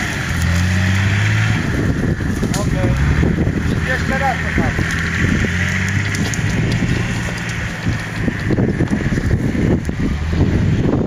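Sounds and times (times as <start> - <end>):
vehicle engine driving off-road: 0.0 - 11.0
wind buffeting microphone: 0.7 - 11.0.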